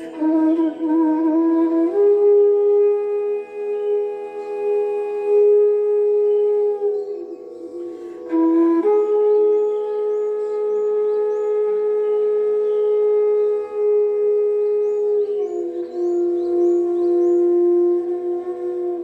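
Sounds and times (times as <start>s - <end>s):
bamboo flute long notes: 0.0s - 19.0s.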